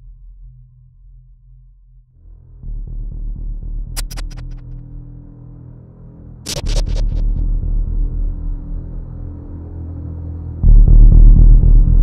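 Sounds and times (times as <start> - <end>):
low drone hum: 2.5 - 12.0.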